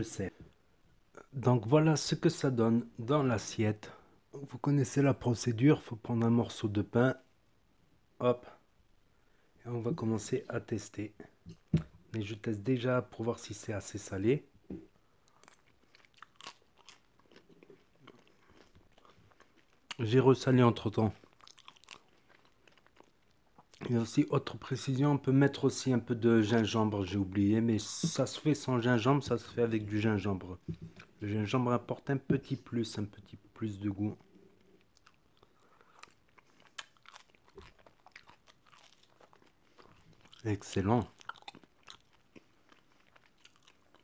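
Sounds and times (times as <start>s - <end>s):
faint chewing: 14.8s - 20.2s, 20.8s - 24.0s, 34.1s - 44.0s.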